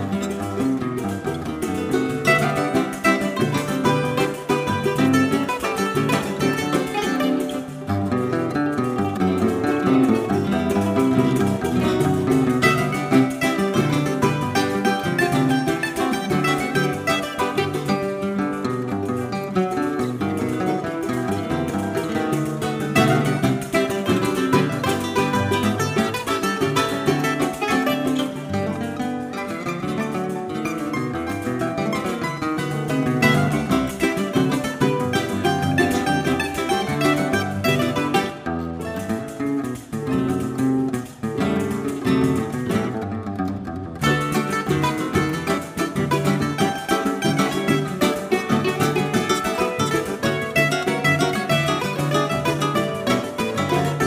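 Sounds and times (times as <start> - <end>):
acoustic guitars: 0.0 - 54.0
cavaquinho: 0.0 - 54.0
mandolin picking melody: 0.0 - 54.0.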